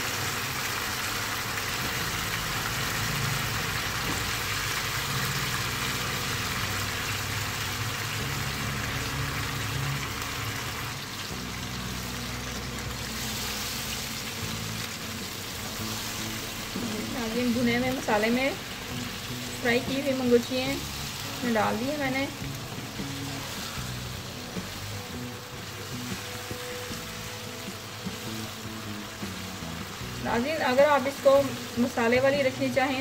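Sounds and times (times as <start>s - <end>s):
sauce sizzling and bubbling in a pan: 0.0s - 33.0s.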